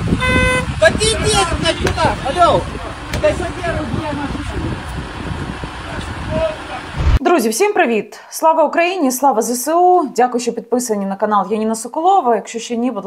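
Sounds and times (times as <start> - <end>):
car horn toot: 0.1 - 0.9
low background rumble: 6.9 - 7.2.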